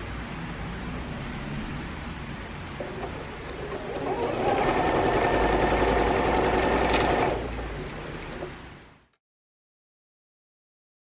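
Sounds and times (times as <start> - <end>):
electric sewing machine stitching: 2.8 - 8.6.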